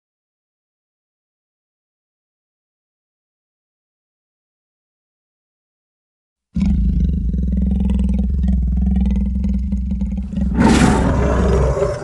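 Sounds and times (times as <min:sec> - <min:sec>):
low monster roar: 0:06.6 - 0:12.0.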